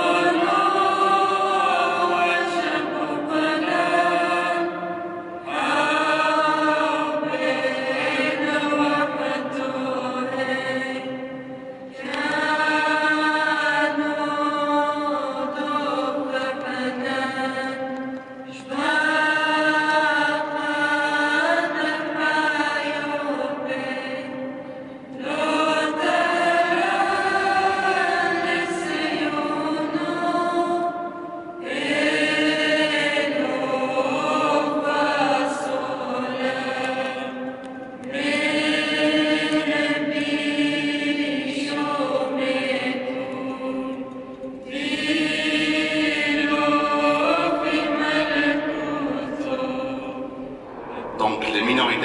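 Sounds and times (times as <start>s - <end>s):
liturgical chant: 0.0s - 52.0s.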